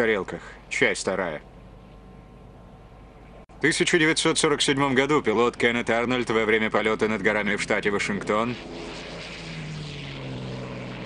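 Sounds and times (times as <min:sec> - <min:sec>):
propeller airplane engines droning: 0:00.0 - 0:11.0.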